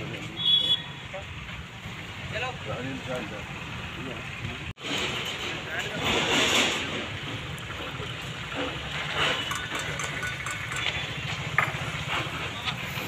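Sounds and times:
people talking: 5.4 - 6.3.

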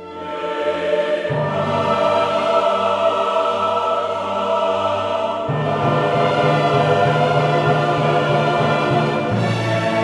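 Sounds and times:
choir singing held chords: 0.0 - 10.0.

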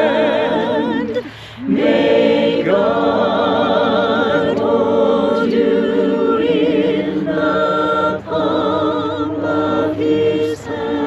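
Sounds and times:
small choir singing a cappella: 0.0 - 11.0.

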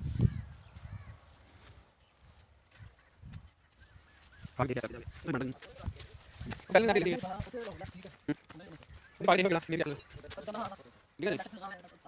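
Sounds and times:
faint bird chirp: 0.2 - 5.4.

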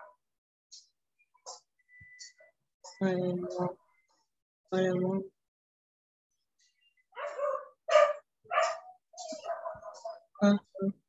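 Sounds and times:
dog barking: 7.1 - 10.3.

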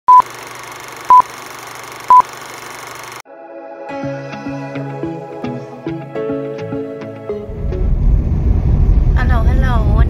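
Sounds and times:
short high beeps: 1.1 - 1.3, 2.1 - 2.3.

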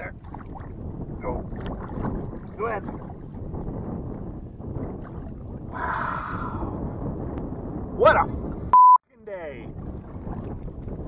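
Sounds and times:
water against a kayak: 0.0 - 6.8, 9.4 - 11.0
wind buffeting microphone: 0.0 - 11.0.

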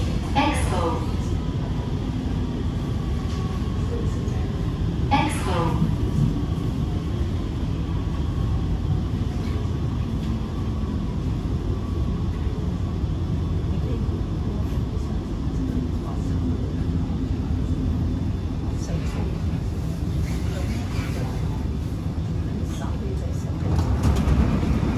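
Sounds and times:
train wheels rumbling: 0.0 - 24.9.

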